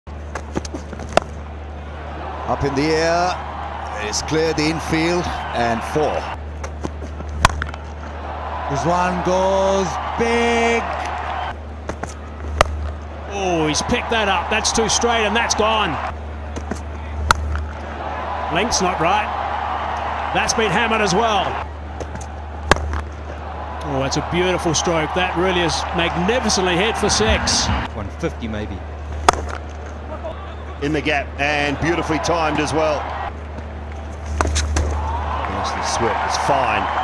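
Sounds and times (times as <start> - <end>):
low background hum: 0.1 - 37.0
stadium crowd noise: 0.1 - 37.0
cricket bat striking ball: 6.6 - 7.8, 22.0 - 23.1, 29.2 - 29.6.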